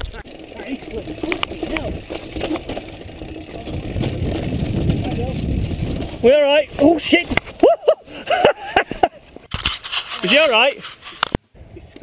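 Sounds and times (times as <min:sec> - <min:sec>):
bike tyres rattling over cobbles: 0:00.0 - 0:11.2.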